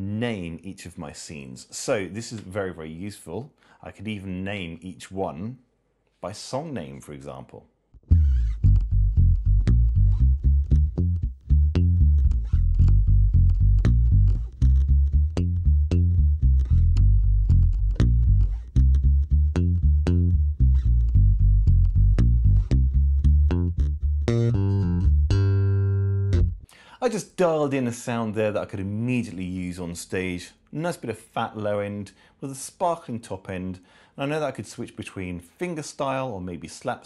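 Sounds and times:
electric bass guitar plucked: 8.0 - 26.7.

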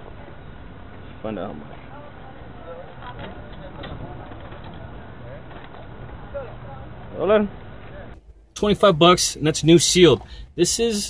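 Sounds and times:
low background hum: 0.0 - 11.0
scattered voices: 1.7 - 9.0.

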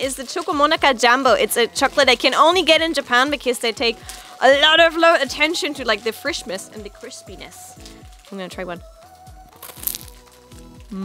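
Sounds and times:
background music with beat: 0.0 - 11.0
wafer crunching: 9.6 - 11.0.

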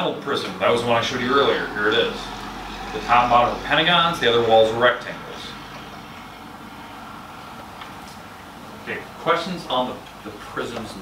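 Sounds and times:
fan-like hum and hiss: 0.0 - 11.0.

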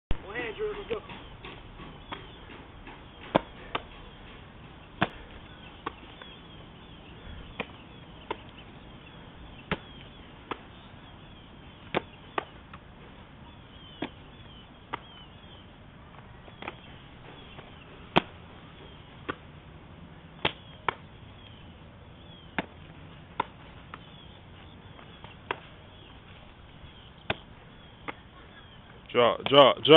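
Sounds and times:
football slapping into hand: 5.0 - 6.3, 9.6 - 10.7, 11.9 - 12.8, 20.4 - 21.1
ball slapping into hands: 9.6 - 10.8, 11.8 - 12.8, 14.9 - 15.1, 20.4 - 21.5, 22.5 - 24.1, 27.2 - 28.3.

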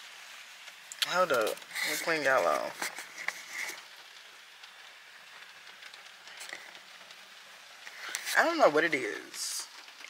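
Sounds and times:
rain on a car roof: 0.0 - 10.0.

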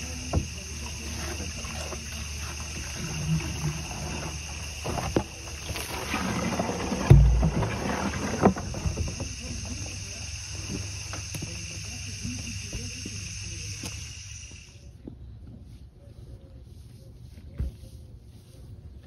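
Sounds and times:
water from hose splashing into buckets: 0.0 - 14.8
heavy thump: 6.9 - 9.3.

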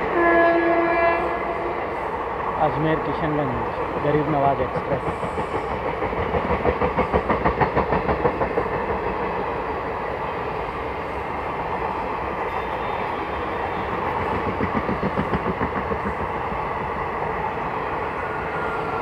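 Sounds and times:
train running rumble: 0.0 - 19.0
train wheels clicking over rail joints: 2.4 - 10.7, 13.6 - 17.8.

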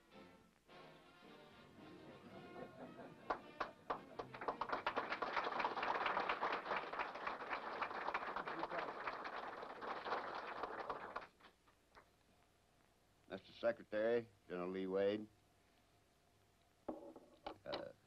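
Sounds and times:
audience applauding: 3.2 - 11.6.

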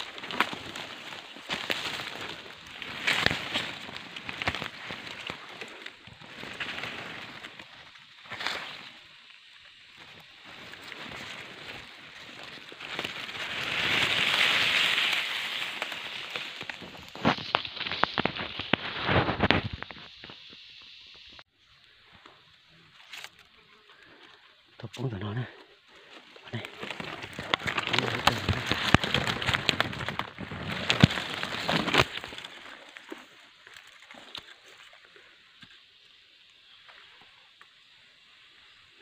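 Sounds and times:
twigs snapping: 0.0 - 8.9, 10.2 - 20.2, 26.0 - 34.7
leaves and twigs rustling: 0.0 - 39.0.

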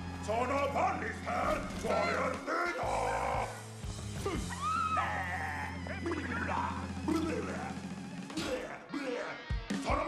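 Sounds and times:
film soundtrack music: 0.0 - 10.0.

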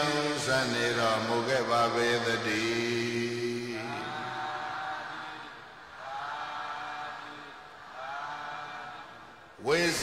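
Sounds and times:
faint voices chanting in unison: 1.3 - 9.7.

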